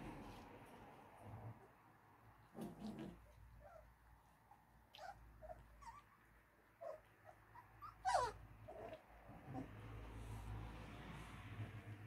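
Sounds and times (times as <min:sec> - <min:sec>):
puppies yipping and whining: 0:04.9 - 0:09.7.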